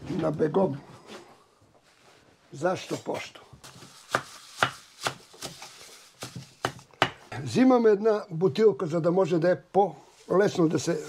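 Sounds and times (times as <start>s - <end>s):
knife chopping on wooden board: 3.6s - 7.4s.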